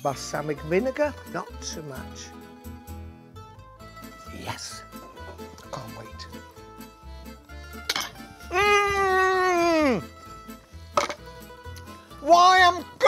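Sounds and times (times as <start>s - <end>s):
background music with bass line: 0.0s - 13.0s.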